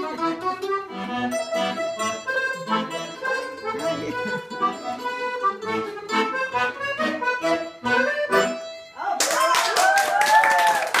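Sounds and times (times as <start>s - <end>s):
music: 0.0s - 9.0s
audience clapping: 9.2s - 11.0s.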